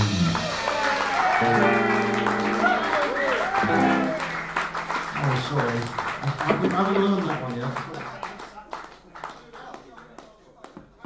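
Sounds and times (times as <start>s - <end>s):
indistinct voices chatting: 2.2s - 8.8s.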